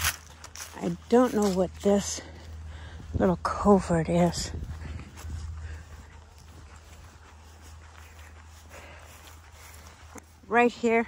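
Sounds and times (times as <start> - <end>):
footsteps on grass: 0.0 - 11.0
wind rumble on microphone: 2.5 - 8.4.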